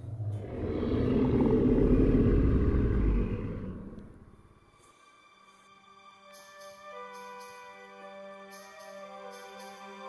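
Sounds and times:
deep rough creature growl: 0.0 - 4.4.

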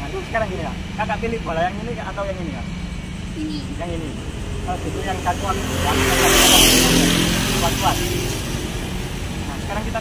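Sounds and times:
motor vehicle passing: 0.6 - 10.0.

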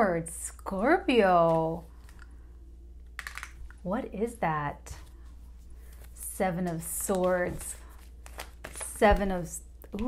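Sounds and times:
cards clicking as drawn: 3.2 - 3.6.

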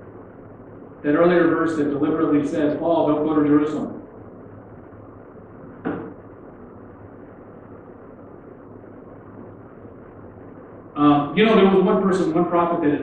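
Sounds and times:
room noise: 0.0 - 13.0
short knock: 5.8 - 6.2.

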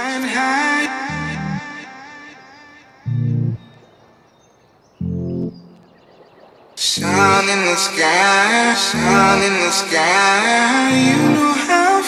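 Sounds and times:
faint high chirps: 3.1 - 4.2, 5.0 - 5.9.

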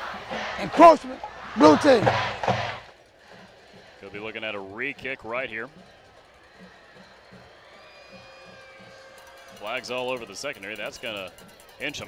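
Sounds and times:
faint crowd noise: 0.0 - 12.0
man announcing over loudspeakers: 0.6 - 2.1.

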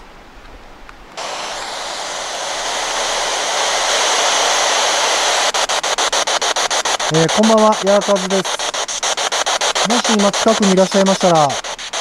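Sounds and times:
radio static hiss: 1.2 - 12.0
rapid static chops: 1.2 - 12.0.

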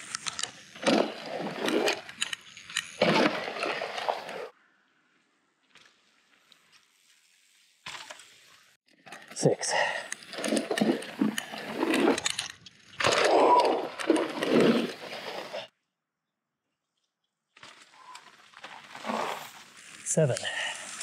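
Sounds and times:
bike tyres on dirt: 0.0 - 15.7, 17.4 - 21.0
bike chain and frame rattling: 9.0 - 15.7.

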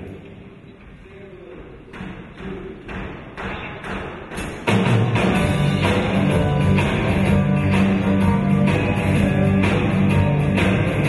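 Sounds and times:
band playing loudly: 4.7 - 11.0
lingering guitar tones: 5.3 - 11.0.

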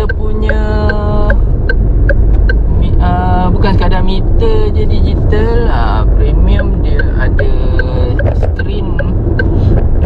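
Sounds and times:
car engine and road noise: 0.0 - 10.0
quiet regular ticking: 0.0 - 10.0.

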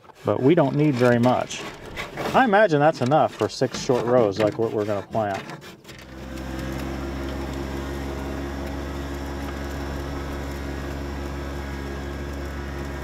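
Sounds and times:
tractor diesel engine running: 6.0 - 13.0.

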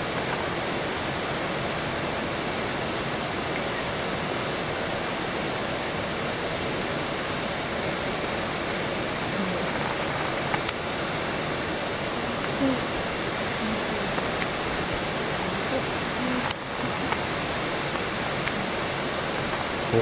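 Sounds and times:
waterfall rushing: 0.0 - 20.0.

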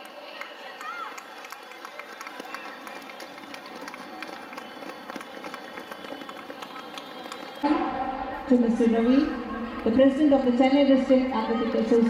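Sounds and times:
crowd chatter: 0.0 - 12.0
sprinters' footfalls on running track: 0.8 - 7.7.

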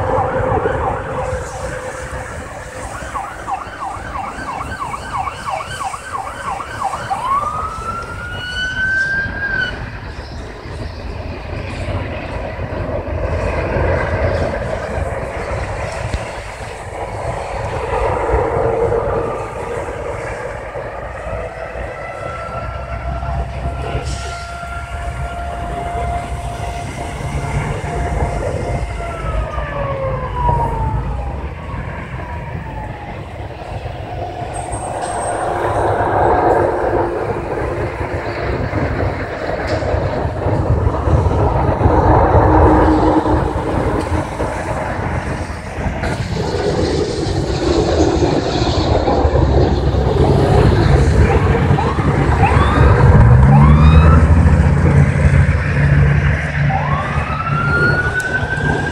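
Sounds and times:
emergency vehicle sirens: 0.0 - 58.9
low rumble: 10.0 - 58.9.

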